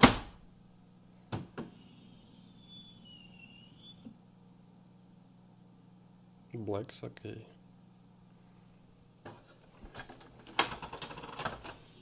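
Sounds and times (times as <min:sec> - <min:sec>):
rapid mechanical clicks and rattles: 0:09.9 - 0:11.8.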